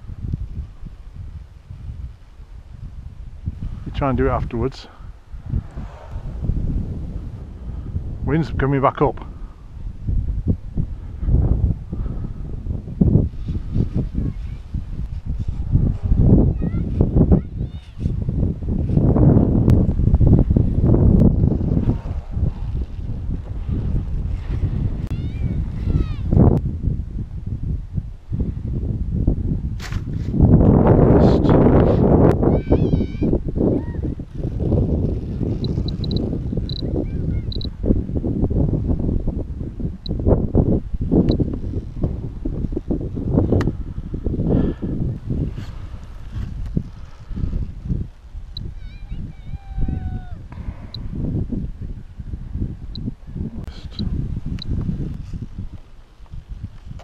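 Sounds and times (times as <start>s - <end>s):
wind buffeting microphone: 0.0s - 57.0s.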